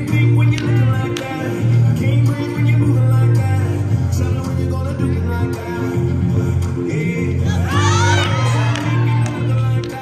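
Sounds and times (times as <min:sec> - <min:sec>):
swing dance music: 0:00.0 - 0:10.0
spectators cheering and shouting: 0:07.5 - 0:09.9.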